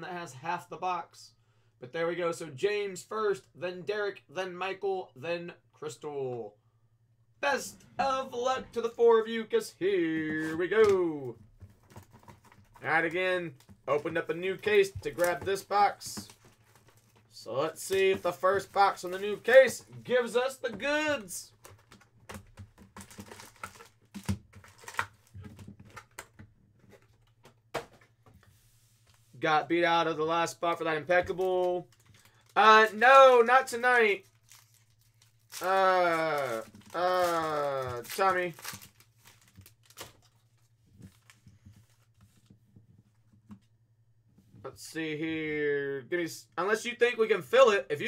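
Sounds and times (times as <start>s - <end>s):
card packs rustling: 10.0s - 28.4s, 30.4s - 43.6s.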